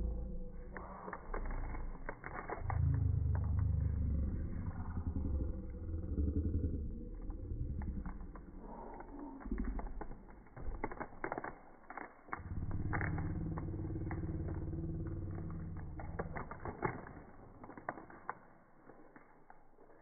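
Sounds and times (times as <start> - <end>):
low hum: 0.0 - 20.0
foil wrapper crinkling: 0.8 - 3.7, 7.6 - 20.0.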